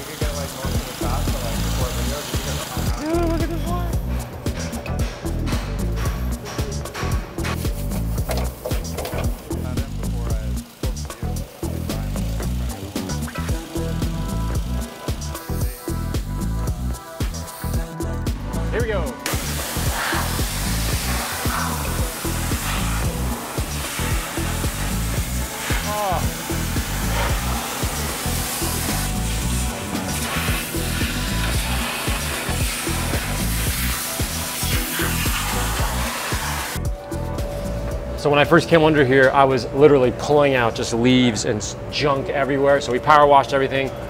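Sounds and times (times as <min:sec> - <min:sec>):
pressure washer spraying metal: 0:00.0 - 0:18.0, 0:19.2 - 0:36.9
music with steady beat: 0:00.0 - 0:39.4.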